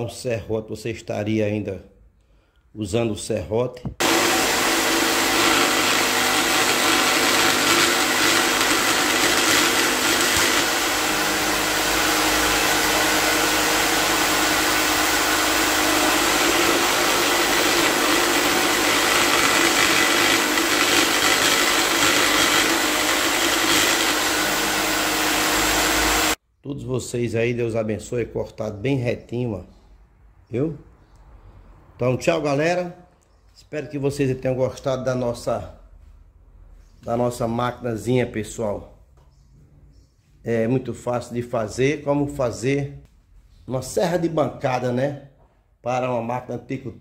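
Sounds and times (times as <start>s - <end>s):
jigsaw motor whine: 4.0s - 26.4s
saw blade rasping through wood: 5.1s - 11.7s, 15.6s - 25.0s.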